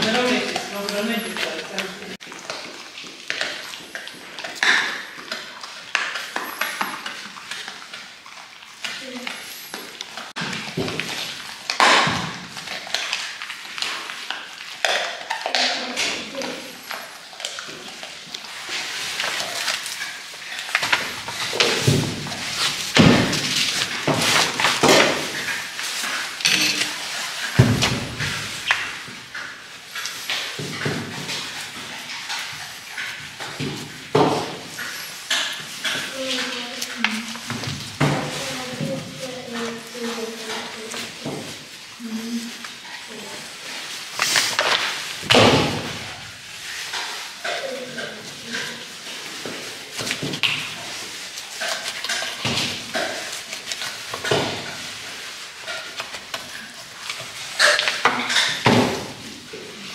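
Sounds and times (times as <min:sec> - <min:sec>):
voices talking: 0:00.0 - 0:02.2.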